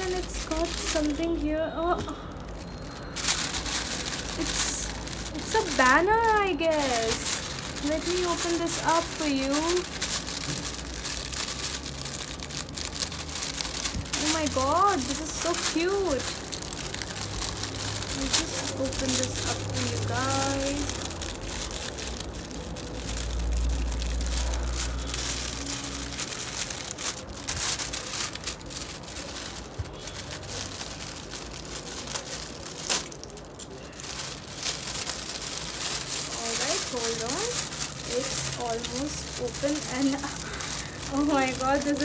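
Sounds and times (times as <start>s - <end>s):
plastic bag and paper crinkling: 0.0s - 42.0s.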